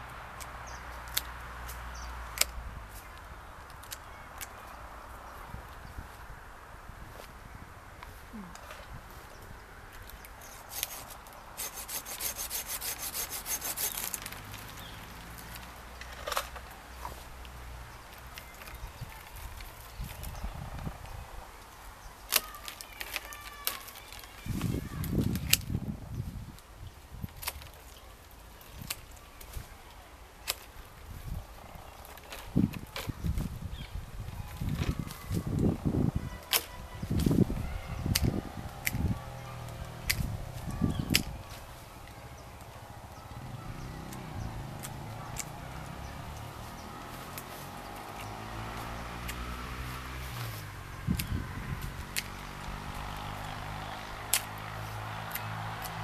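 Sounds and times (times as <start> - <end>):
branches rustling: 0.0 - 56.0
pruning shears snipping: 10.0 - 17.5, 36.4 - 37.4, 38.0 - 42.7, 44.0 - 56.0.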